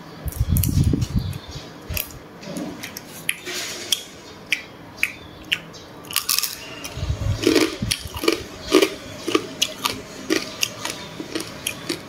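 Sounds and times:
crunching and chewing crab shell: 5.0s - 12.0s.

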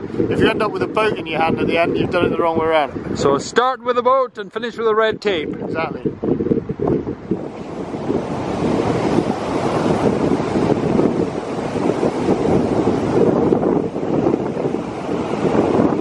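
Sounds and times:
surf breaking on sandy beach: 0.0s - 3.7s, 5.6s - 16.0s
wind buffeting microphone: 0.0s - 16.0s.

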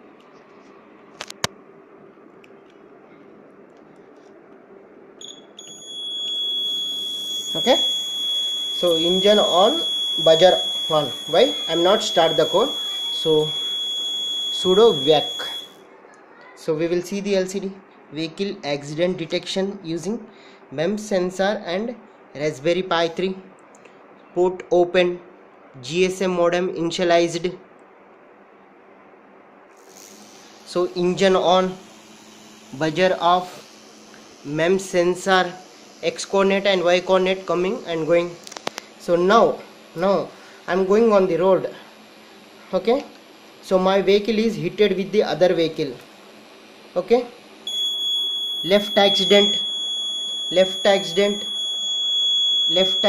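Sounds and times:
electronic buzzer high-pitched tone: 5.2s - 15.8s, 29.7s - 41.6s, 47.6s - 53.0s.

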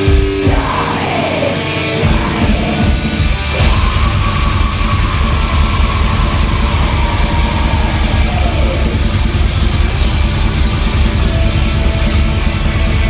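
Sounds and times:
distorted electric guitars: 0.0s - 13.0s
drums: 0.0s - 13.0s.

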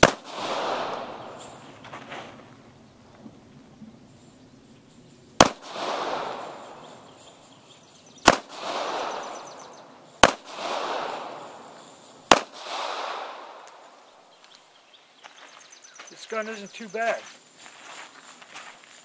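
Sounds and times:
pistol shots: 0.0s - 1.7s, 5.4s - 7.2s, 8.2s - 14.0s
gunshot echo: 0.0s - 1.8s, 5.4s - 7.1s, 8.2s - 14.0s.

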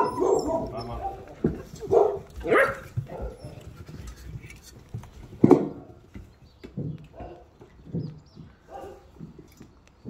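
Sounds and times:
puppies yipping and whimpering: 0.0s - 1.4s.

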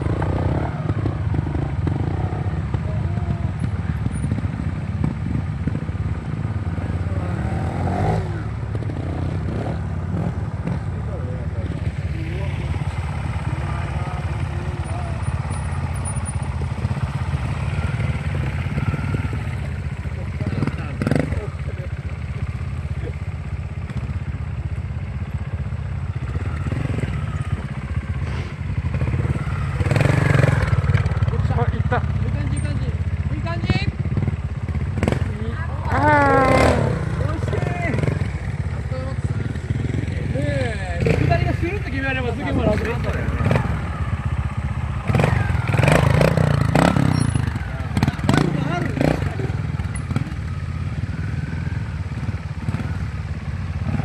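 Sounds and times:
motorcycle engine at low revs: 0.0s - 54.0s.

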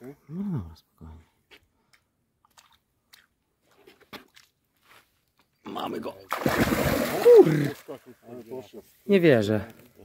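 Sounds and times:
fish splashing at water surface: 6.3s - 7.7s.

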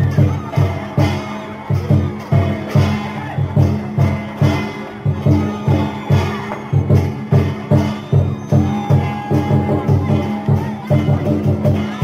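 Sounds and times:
drum and cymbal strokes: 0.0s - 12.0s.

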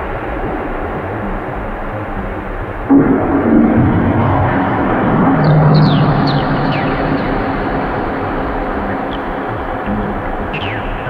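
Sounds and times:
noisy electronic drone: 0.0s - 11.0s.

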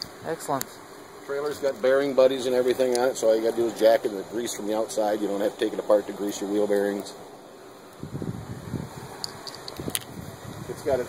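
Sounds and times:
wind buffeting microphone: 8.0s - 11.0s.

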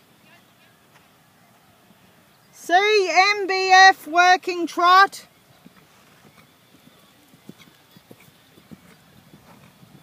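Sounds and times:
horse hoofbeats trotting: 3.0s - 10.0s.

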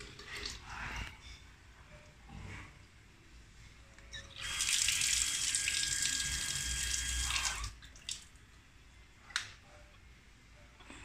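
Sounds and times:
water running from a tap: 4.4s - 8.2s
pump whine: 5.2s - 7.7s.

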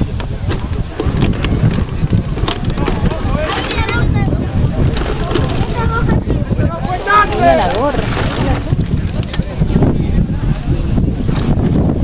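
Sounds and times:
wind buffeting microphone: 0.0s - 12.0s
players shouting: 6.6s - 8.0s.

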